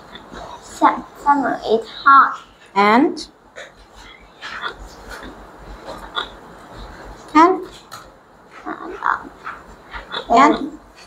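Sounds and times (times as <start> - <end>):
child murmuring and grunting: 8.6 - 9.4, 10.0 - 10.9.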